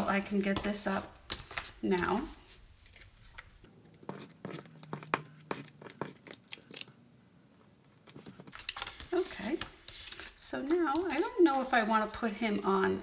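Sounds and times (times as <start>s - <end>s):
paper rustling: 8.0s - 12.3s.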